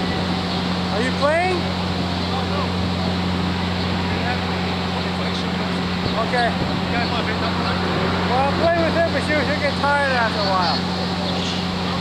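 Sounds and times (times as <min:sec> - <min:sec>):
low motor-like drone: 0:00.0 - 0:12.0.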